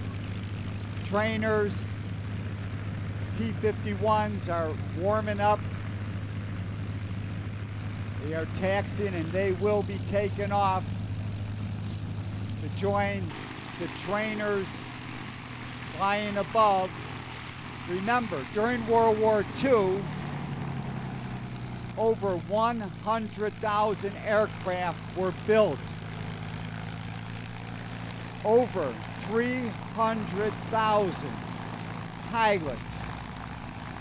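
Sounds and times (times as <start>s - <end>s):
piston aircraft engines droning: 0.0s - 34.0s.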